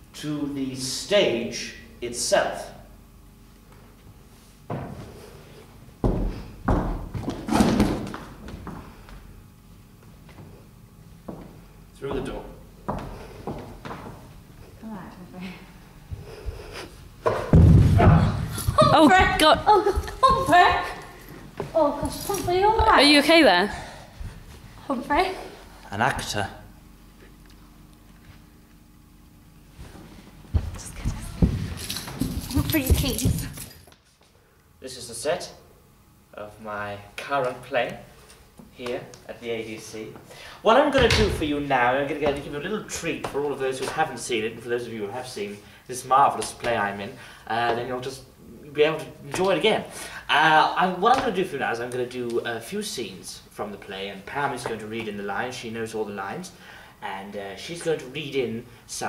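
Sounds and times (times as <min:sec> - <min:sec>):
thuds and knocks: 0:06.0 - 0:08.8, 0:17.2 - 0:19.7.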